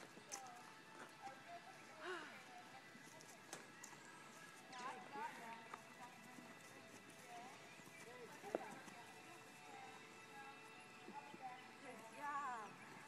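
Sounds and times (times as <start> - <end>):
faint voices: 0.0 - 13.0
horse hooves on grass: 0.0 - 13.0.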